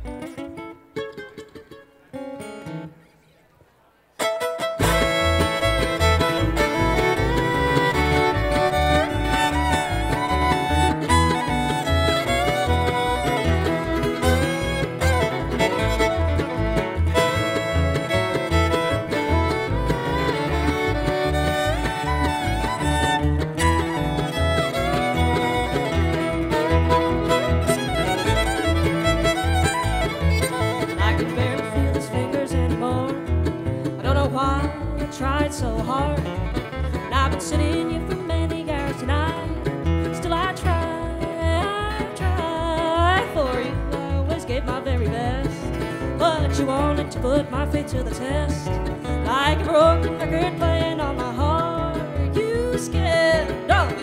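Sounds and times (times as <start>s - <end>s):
bluegrass band playing: 0.0s - 3.2s, 4.2s - 54.0s.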